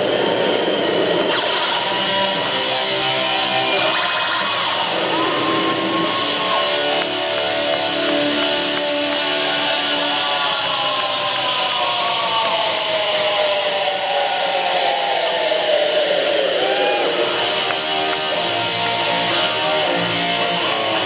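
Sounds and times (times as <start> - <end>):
electric guitar sliding notes: 0.0 - 14.5, 15.3 - 21.0.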